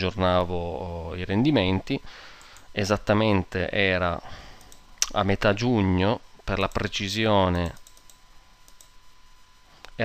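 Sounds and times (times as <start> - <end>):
faint computer mouse clicks: 7.6 - 8.9.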